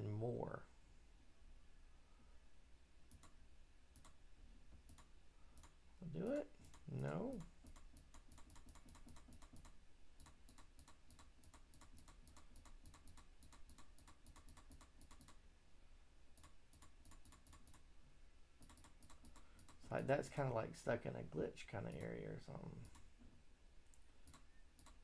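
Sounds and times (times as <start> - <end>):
computer mouse clicks: 3.1 - 4.2, 4.8 - 5.8, 6.6 - 15.4, 16.4 - 17.8, 18.6 - 19.8, 22.8 - 23.1, 23.9 - 25.0.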